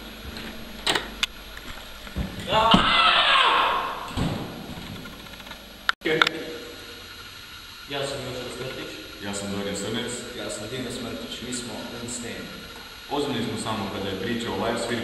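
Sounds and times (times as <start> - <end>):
men shouting in surprise: 2.5 - 4.2.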